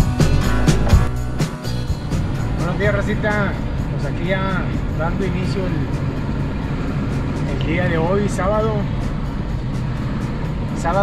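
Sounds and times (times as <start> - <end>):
car road and engine noise: 0.0 - 11.0
music playing: 0.0 - 11.0.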